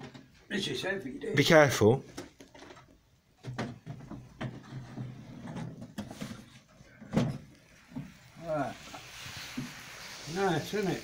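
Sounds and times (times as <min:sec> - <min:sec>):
wooden knocks and scrapes: 0:02.1 - 0:08.2.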